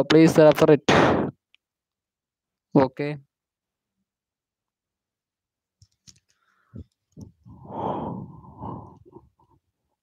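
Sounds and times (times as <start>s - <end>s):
heavy exhale into microphone: 7.5s - 9.3s.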